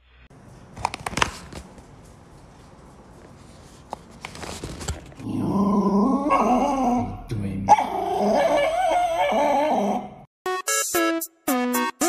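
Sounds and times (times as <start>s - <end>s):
small dog whining growls: 5.2s - 10.2s.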